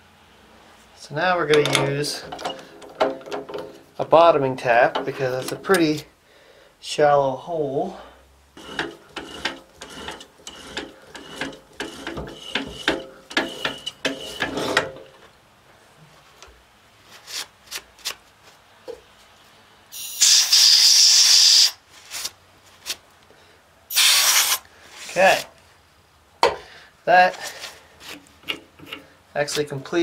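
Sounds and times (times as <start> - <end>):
compressed air hissing blasts: 19.9 - 21.8, 23.9 - 24.7.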